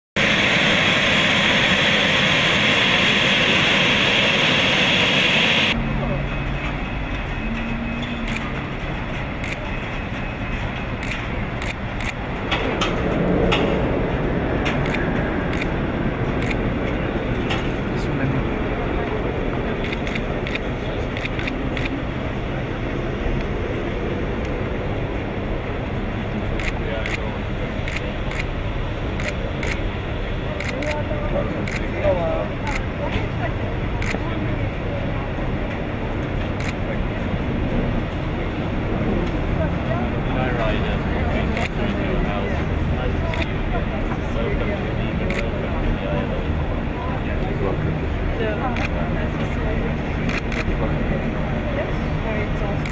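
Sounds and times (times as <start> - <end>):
aircraft engine hiss: 0.2 - 5.8
aircraft engine rumble: 0.2 - 52.9.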